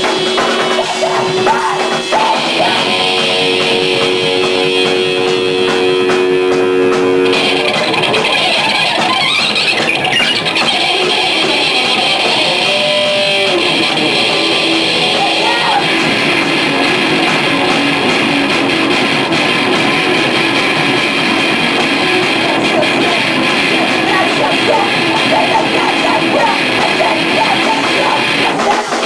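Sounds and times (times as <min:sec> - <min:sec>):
electric guitars: 0:00.0 - 0:29.0
rock band playing live: 0:00.0 - 0:29.0.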